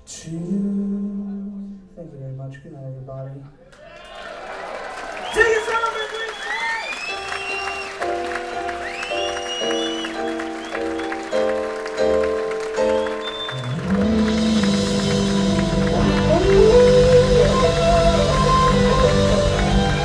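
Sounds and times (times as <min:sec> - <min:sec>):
live blues-rock band: 0:08.0 - 0:20.0
electric guitar bending notes: 0:12.0 - 0:20.0.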